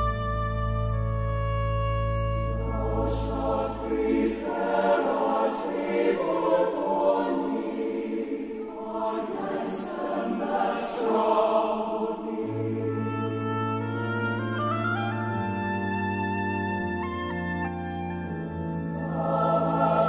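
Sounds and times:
choir singing: 2.4 - 14.5, 18.2 - 20.0.

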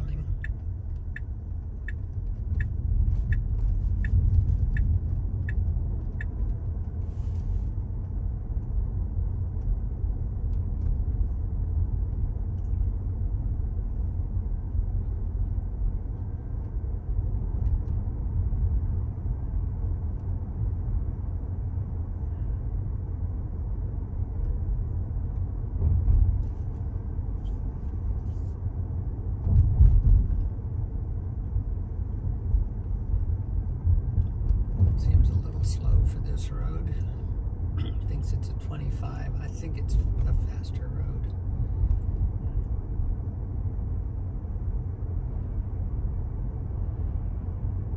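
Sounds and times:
tyre and road rumble in car: 0.0 - 47.9.

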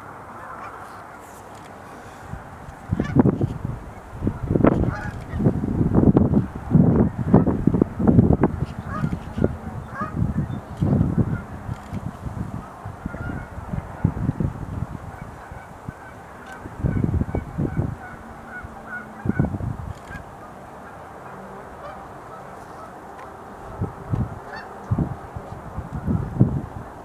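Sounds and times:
distant birds honking: 0.0 - 27.0.

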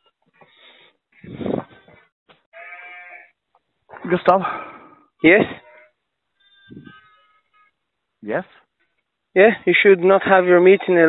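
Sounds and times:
sheep bleating: 1.6 - 3.4, 5.2 - 7.8.

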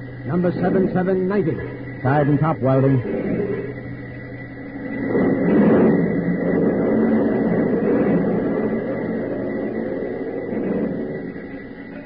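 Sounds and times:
rumbling machinery clatter: 0.0 - 12.0.

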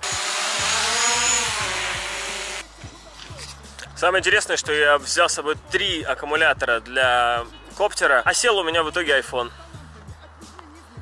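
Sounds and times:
drone propellers buzzing: 0.0 - 2.7.

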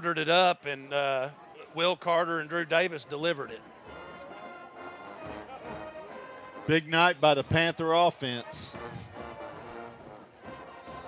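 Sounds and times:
brass marching band: 2.5 - 11.0.

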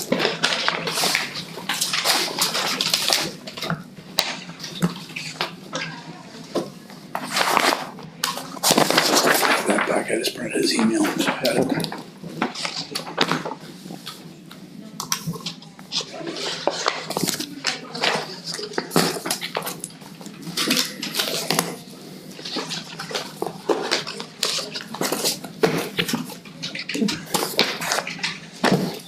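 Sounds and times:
paper rustling and shuffling: 0.0 - 29.0.

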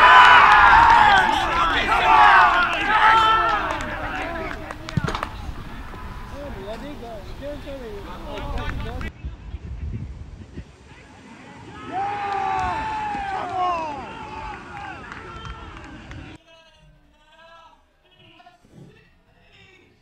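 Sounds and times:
voices shouting: 0.0 - 9.1, 11.4 - 16.4.

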